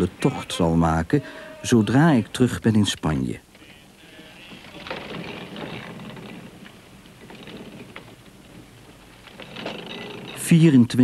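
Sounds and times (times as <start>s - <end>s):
quiet steady rushing noise: 0.0s - 11.0s.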